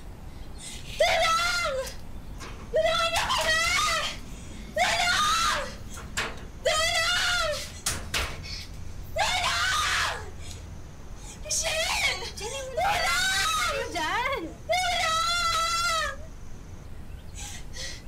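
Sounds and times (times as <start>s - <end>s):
woman shouting for help: 2.8s - 4.2s, 11.5s - 16.2s.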